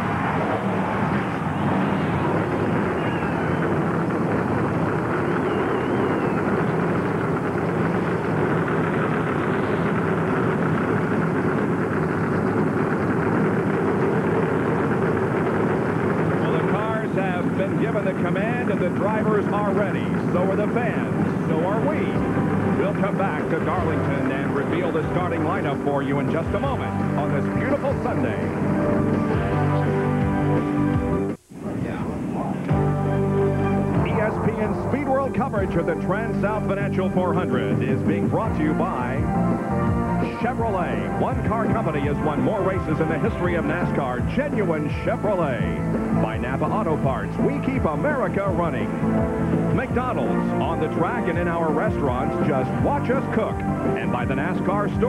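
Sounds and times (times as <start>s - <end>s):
race car engines rumbling: 0.0s - 55.0s.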